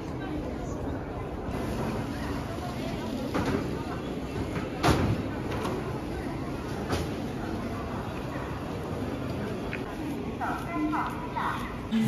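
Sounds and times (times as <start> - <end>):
faint voices: 0.0 - 12.0
terminal hall hubbub: 0.0 - 12.0.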